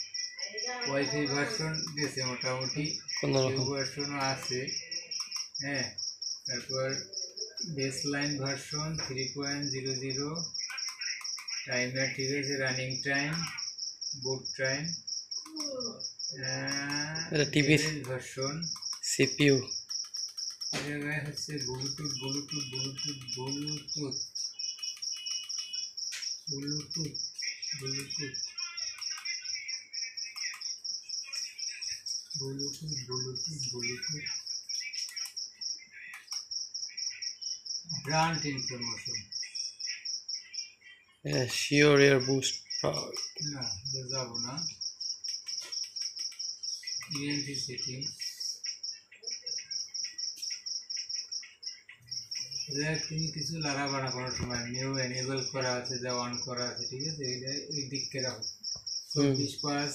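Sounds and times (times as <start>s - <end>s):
insect chirping: 0.0s - 59.9s.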